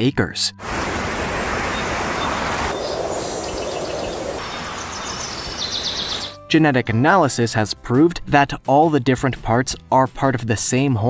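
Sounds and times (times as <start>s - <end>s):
wind rushing through trees: 0.6s - 6.4s
faint bird chirps: 1.7s - 6.4s.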